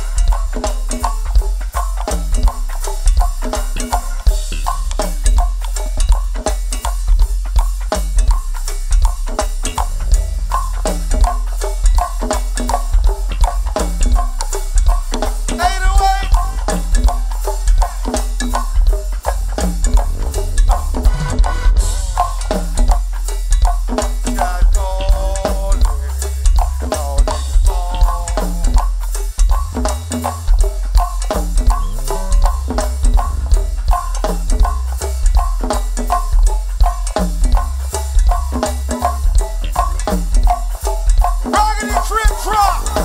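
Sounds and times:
drum kit and percussion: 0.0 - 43.0
go-go band playing: 0.0 - 43.0
heavy bass: 0.0 - 43.0
wavering high note: 15.6 - 16.9.

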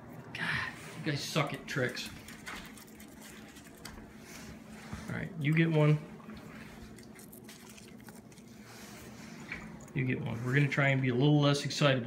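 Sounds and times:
dog claws clicking on tile floor: 1.9 - 4.1.

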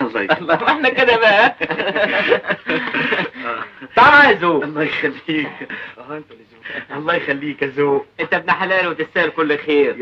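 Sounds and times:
men chuckling: 0.0 - 3.7
men speaking: 0.0 - 10.0.

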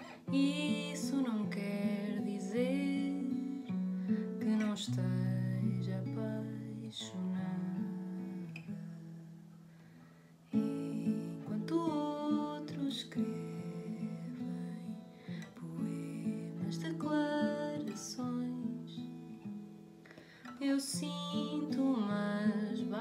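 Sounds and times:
acoustic guitar chords: 0.0 - 23.0.

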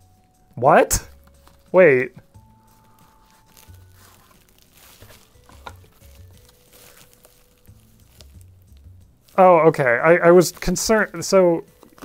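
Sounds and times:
soft background music: 0.0 - 12.0
playing cards rustling: 1.0 - 12.0.

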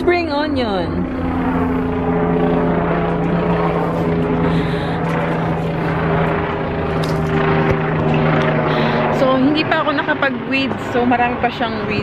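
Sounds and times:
steady engine drone: 0.0 - 12.0.

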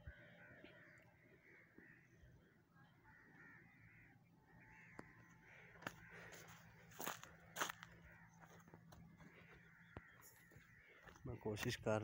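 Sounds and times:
faint distant bird calls: 0.0 - 12.0.

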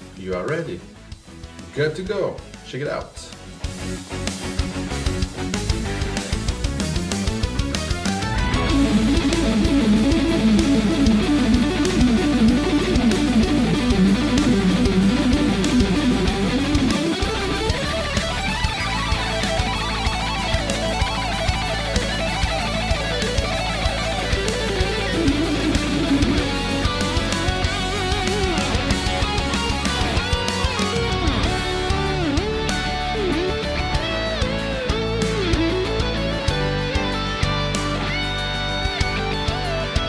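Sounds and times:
electric guitar rapid runs: 4.4 - 40.0.

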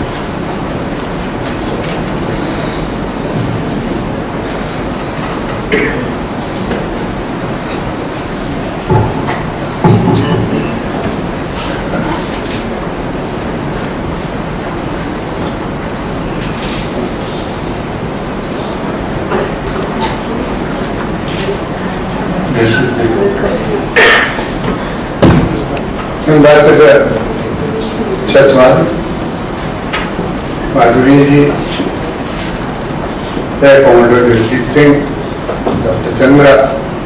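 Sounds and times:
rumbling background noise in a hall: 0.0 - 37.0.

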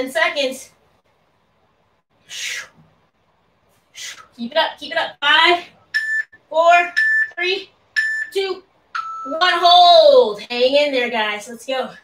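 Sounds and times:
digital timer high beeps: 6.0 - 9.5
lower timer tone: 6.0 - 9.5.

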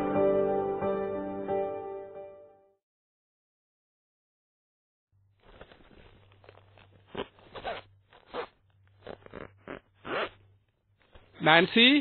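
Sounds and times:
zipper rasping: 5.4 - 10.6.

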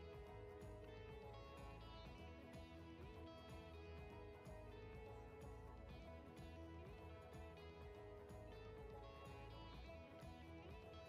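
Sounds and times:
quiet guitar-led background music: 0.0 - 11.0.

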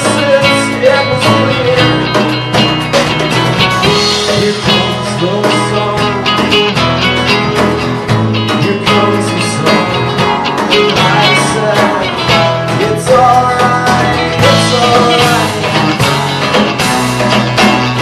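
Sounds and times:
acoustic guitar strumming: 0.0 - 18.0.

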